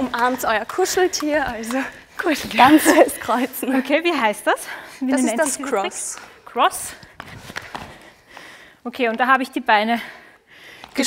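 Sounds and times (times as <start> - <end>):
skipping rope taps: 0.0 - 3.1
light footfalls on gym floor: 0.0 - 3.8, 5.5 - 9.4.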